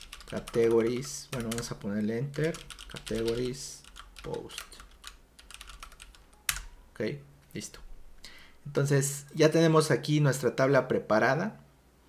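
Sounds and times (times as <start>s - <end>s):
computer keyboard typing: 0.0s - 6.8s.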